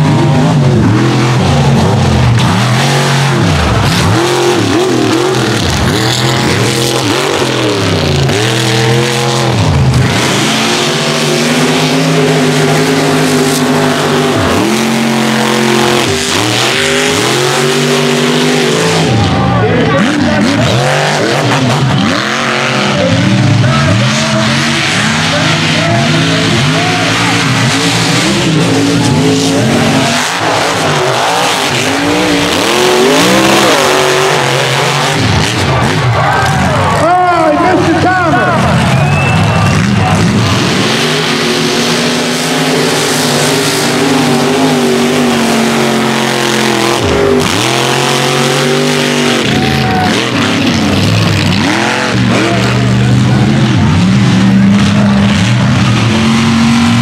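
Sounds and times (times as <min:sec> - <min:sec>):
truck engines revving: 0:00.0 - 0:57.0.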